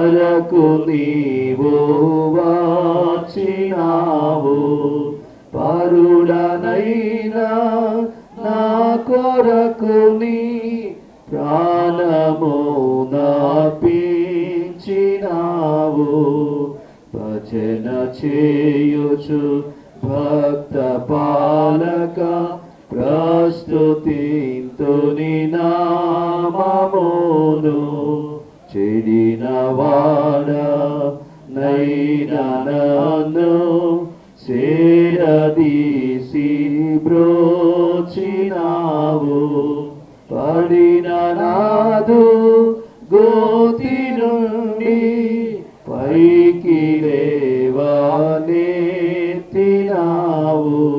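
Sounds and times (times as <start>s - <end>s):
hymn sung in long notes: 0.0s - 50.9s.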